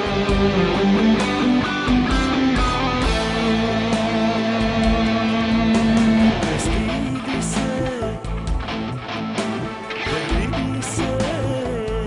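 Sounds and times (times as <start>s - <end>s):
backing track with bass and drums: 0.0s - 12.0s
electric guitar lead melody: 0.0s - 12.0s.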